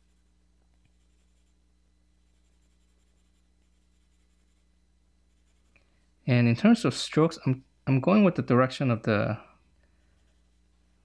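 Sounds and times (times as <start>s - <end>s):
low steady hum: 0.0s - 11.0s
pencil scratching on paper: 0.9s - 1.6s, 2.2s - 4.7s, 5.3s - 5.8s, 10.0s - 10.6s.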